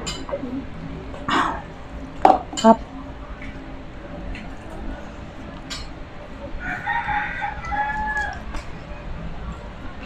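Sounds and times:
rooster crowing: 0:06.6 - 0:08.6.

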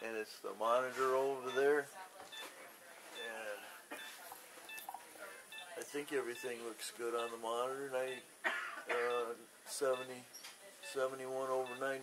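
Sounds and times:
patient monitor beeping: 0:01.3 - 0:08.3, 0:08.9 - 0:12.0.

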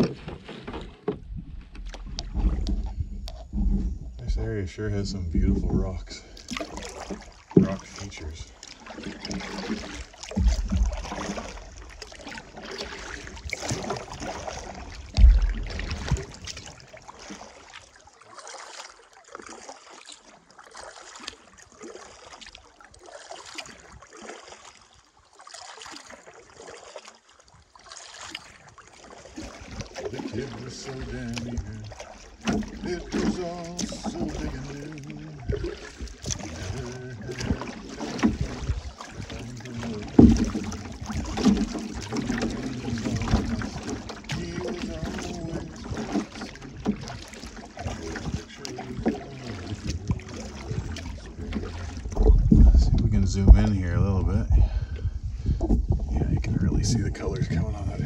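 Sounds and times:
canoe paddle strokes: 0:00.0 - 0:57.4
man singing wordlessly: 0:30.3 - 0:31.9, 0:32.8 - 0:35.5.

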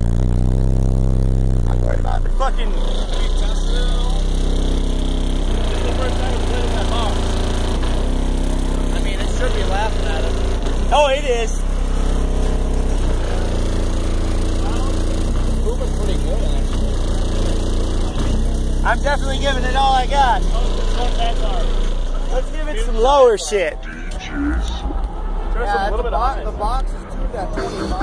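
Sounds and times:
bass-heavy music from car subwoofer: 0:00.0 - 0:23.4.

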